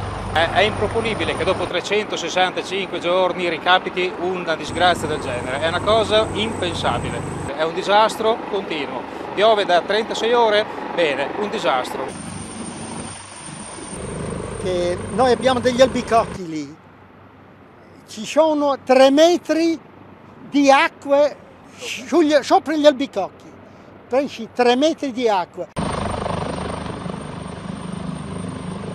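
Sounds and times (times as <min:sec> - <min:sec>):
helicopter rotor noise: 0:00.0 - 0:16.7, 0:24.1 - 0:28.9
thin high whine: 0:04.7 - 0:07.5, 0:12.1 - 0:16.4.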